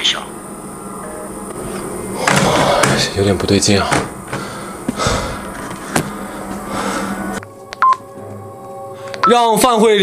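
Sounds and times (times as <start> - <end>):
hissy background noise: 0.0 - 10.0
steady hum: 0.0 - 10.0
telephone keypad beep: 7.8 - 8.0.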